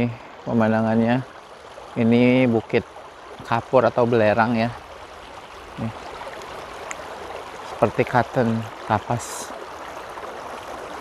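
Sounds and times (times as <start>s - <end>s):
water rushing in channels: 0.0s - 11.0s.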